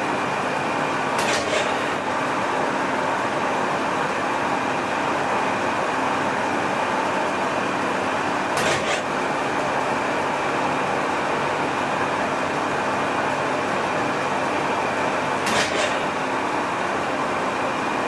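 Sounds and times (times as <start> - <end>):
tool cutting steel: 1.2 - 2.0, 8.6 - 9.1, 15.4 - 16.2.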